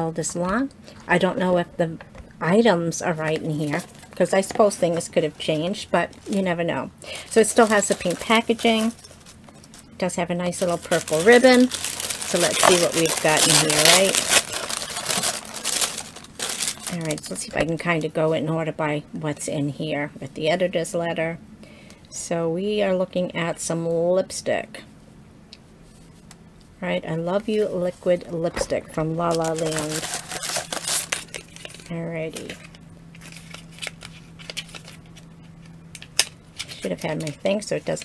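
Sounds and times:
faint low hum: 0.0s - 38.0s
paper packaging crinkling: 7.1s - 9.8s, 10.5s - 17.5s, 29.0s - 38.0s.

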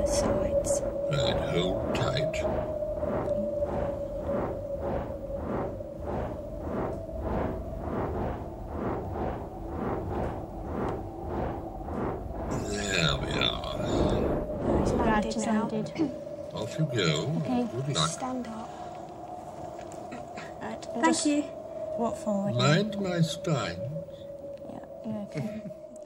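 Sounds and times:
rough growling call: 0.0s - 25.9s
droning hum with rhythmic pulses: 0.0s - 26.0s.

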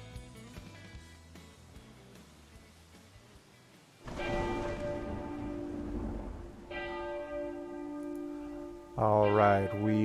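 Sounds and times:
bell tolling: 4.1s - 10.0s.

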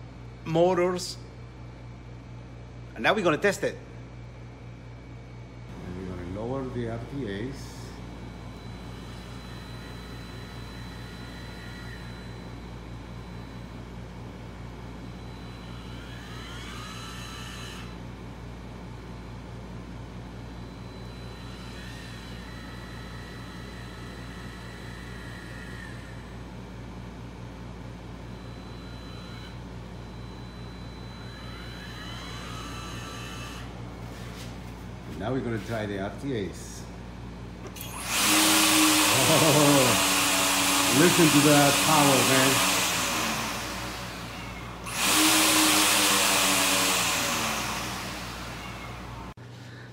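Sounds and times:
low machine hum: 0.0s - 49.9s
electric actuators whining: 5.7s - 49.9s.

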